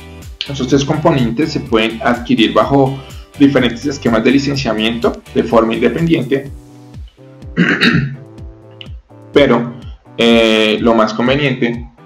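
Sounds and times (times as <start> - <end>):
background music: 0.0 - 12.0
man clearing his throat: 7.5 - 8.3.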